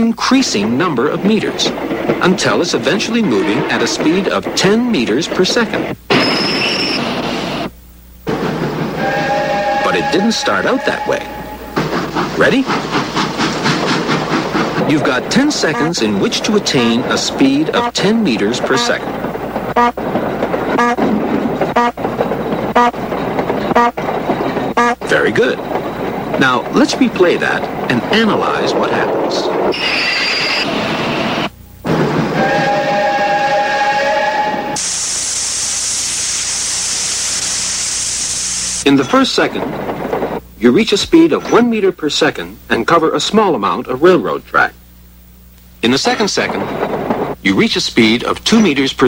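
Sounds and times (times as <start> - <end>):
cartoon steam locomotive chuffing: 0.2 - 7.7, 8.3 - 42.2
steam whistle: 8.9 - 11.8, 29.8 - 38.5
high hiss of steam: 34.6 - 38.8.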